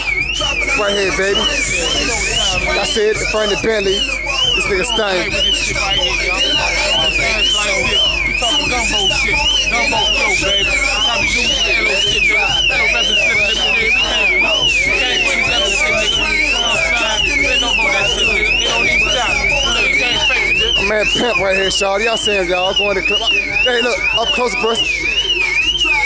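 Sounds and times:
electronic alarm sweeping tone: 0.0s - 26.0s
many voices talking: 0.0s - 26.0s.

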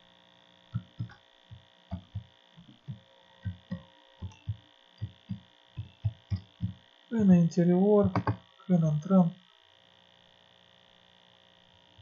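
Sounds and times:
electrical hum: 0.0s - 12.0s
keyboard key taps: 0.8s - 1.2s, 1.9s - 2.3s, 2.9s - 6.8s, 8.0s - 8.4s.

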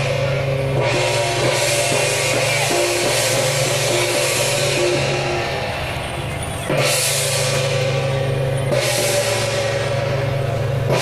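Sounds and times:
brass cymbals: 0.0s - 11.0s
drums: 0.0s - 11.0s.

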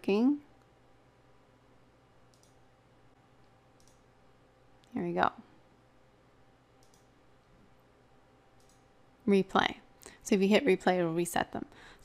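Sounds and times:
low steady hum: 0.0s - 12.0s
computer mouse clicks: 2.3s - 2.6s, 3.4s - 4.1s, 6.8s - 7.1s, 8.6s - 8.9s.

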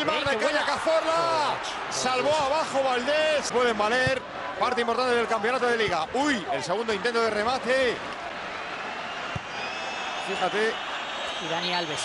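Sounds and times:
stadium crowd roar: 0.0s - 12.0s.

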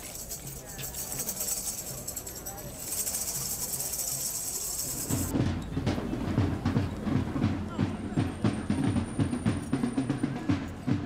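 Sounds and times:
tambourines jingling: 0.0s - 5.3s.

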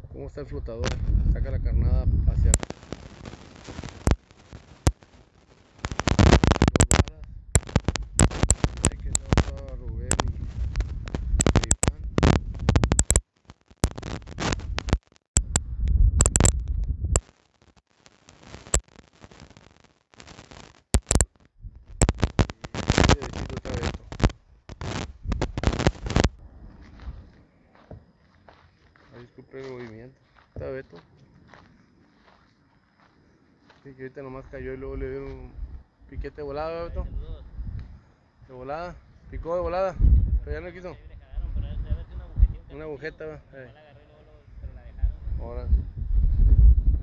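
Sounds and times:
wind buffeting microphone: 0.0s - 4.2s, 5.8s - 13.2s, 13.9s - 17.2s, 21.6s - 27.6s, 34.5s - 38.1s, 38.9s - 42.8s, 44.4s - 47.0s.

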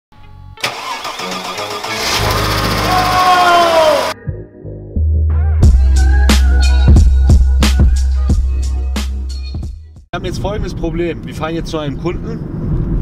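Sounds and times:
bass-heavy music beat: 2.6s - 10.1s.

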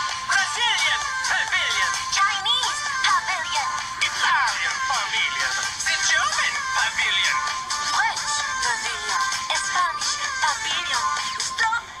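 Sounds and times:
backing track: 0.0s - 11.8s
high-pitched synthetic singing: 0.1s - 12.0s.

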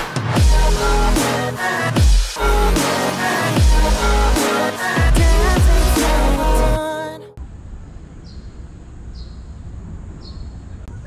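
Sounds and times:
bird chirping: 8.2s - 11.0s.

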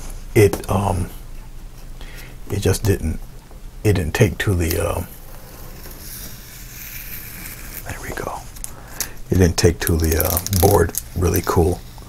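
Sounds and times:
tape peeling off board: 5.7s - 7.9s.

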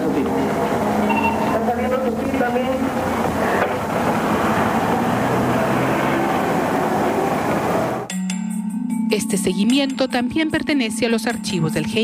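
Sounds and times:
noisy rumble and hiss: 0.0s - 8.1s.

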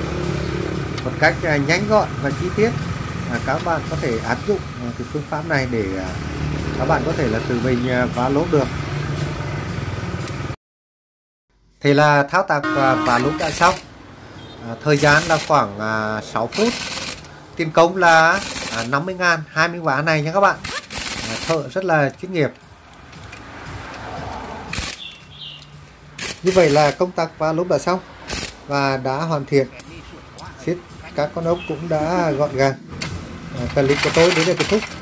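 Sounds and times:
pneumatic impact wrench running: 15.0s - 15.6s, 16.5s - 17.4s, 18.1s - 19.0s, 20.6s - 21.7s, 24.7s - 25.1s, 26.2s - 27.0s, 28.2s - 28.6s, 33.7s - 35.0s.

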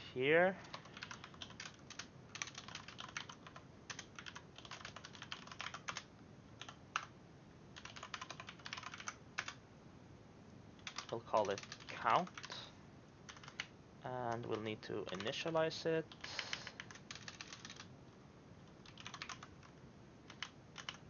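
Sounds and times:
computer keyboard typing: 0.6s - 7.1s, 7.8s - 9.6s, 10.8s - 12.7s, 13.3s - 17.9s, 18.6s - 21.0s.

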